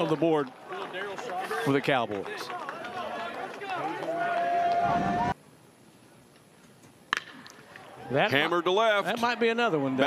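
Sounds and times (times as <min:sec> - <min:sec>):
faint ballpark background: 0:00.0 - 0:10.0
baseball bat hitting ball: 0:07.1 - 0:07.6.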